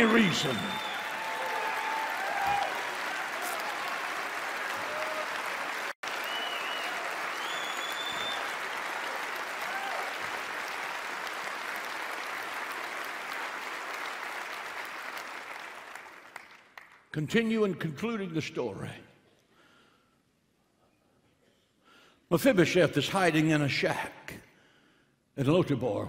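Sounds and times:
shouts and cheers: 0:00.0 - 0:10.4
crowd applauding: 0:00.0 - 0:17.0.

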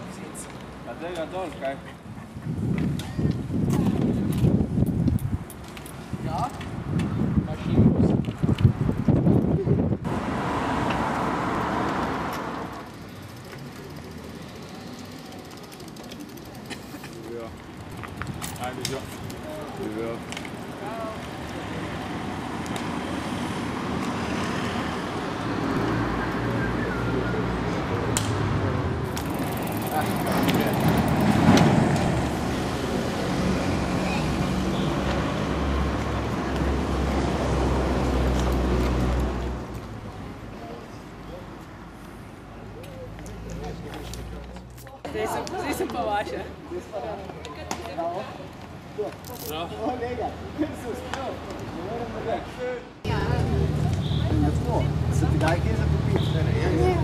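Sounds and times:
steady street background: 0:00.0 - 0:57.0
vehicle passing: 0:10.0 - 0:44.8, 0:50.1 - 0:57.0
people's voices: 0:24.9 - 0:37.6, 0:38.4 - 0:57.0.

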